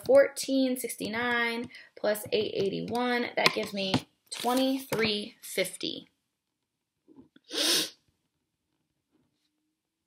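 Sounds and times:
person sneezing: 7.5 - 8.0.

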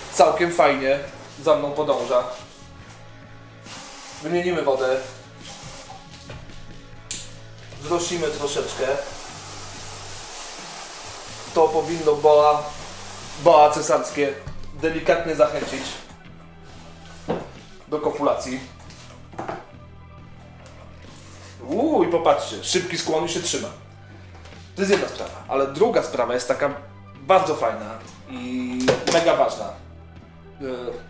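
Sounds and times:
background music with low tones: 0.0 - 31.0
water spraying from hose nozzle: 3.6 - 6.0, 7.8 - 14.0.

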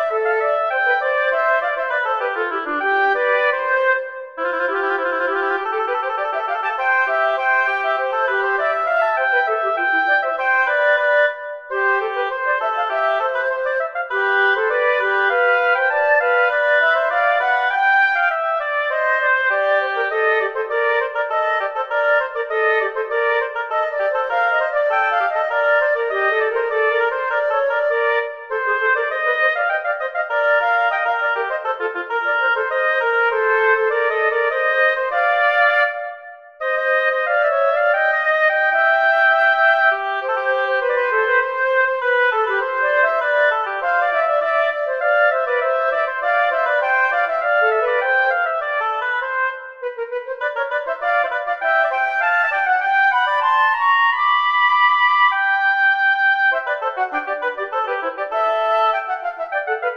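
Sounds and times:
flute and oboe duet: 0.0 - 59.9.

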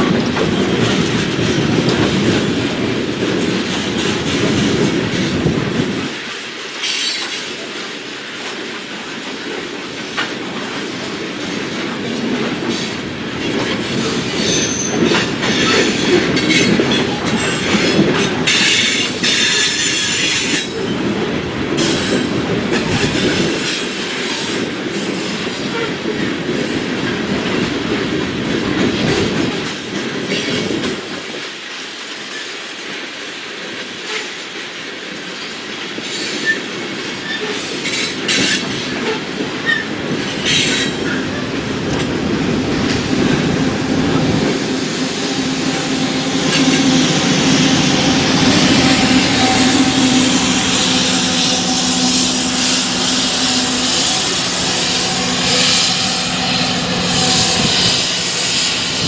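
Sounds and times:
freight cars rumbling on rails: 0.0 - 31.6, 34.9 - 59.0
steel wheels squealing: 6.8 - 7.6, 14.0 - 20.9, 45.1 - 59.0.

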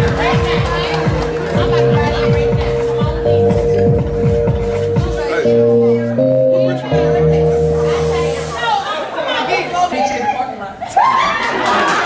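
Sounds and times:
held music chord with bass: 0.0 - 9.2
voices chattering in a hall: 0.0 - 12.0.

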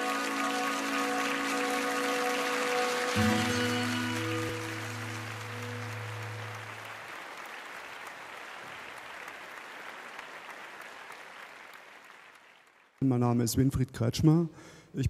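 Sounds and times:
intro music chord: 0.0 - 7.0
audience applause: 0.0 - 13.0.

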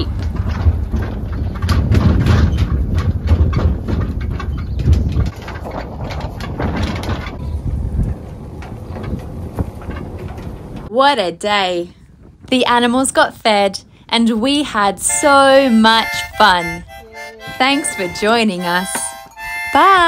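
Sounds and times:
trailer rattles and knocks: 0.0 - 10.9, 14.6 - 20.0
vehicle rumble: 0.0 - 10.9.

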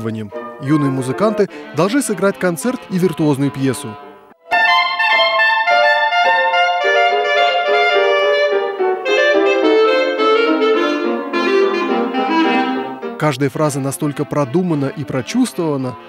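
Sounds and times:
piano accompaniment: 0.0 - 16.0
solo clarinet playing: 0.3 - 13.2.

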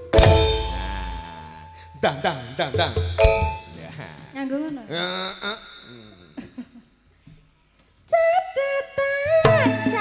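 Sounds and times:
struck metal percussion note: 0.0 - 1.8, 2.8 - 4.4
man's voice sliding pitch: 3.7 - 6.4.

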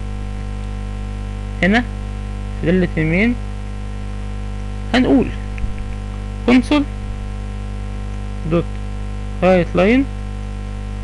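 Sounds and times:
electrical mains hum: 0.0 - 11.0
person speaking: 1.6 - 1.9, 2.6 - 3.4, 4.8 - 7.4, 8.4 - 10.2.

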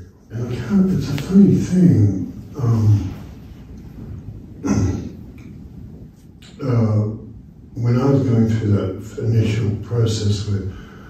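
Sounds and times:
man clearing his throat: 4.6 - 5.2.

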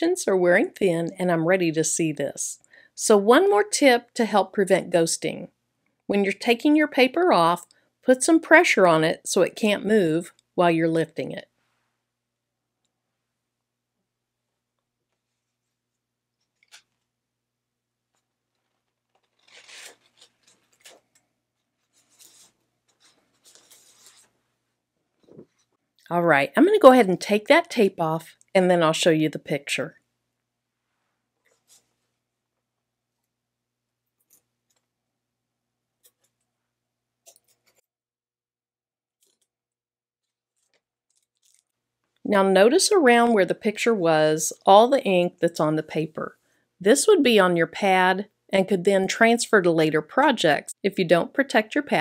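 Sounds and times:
paper rustling and crinkling: 18.1 - 24.4, 40.2 - 41.7.

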